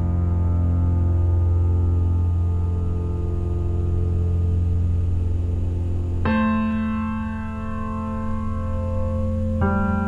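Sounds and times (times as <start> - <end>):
grand piano chord ringing: 0.0 - 10.0.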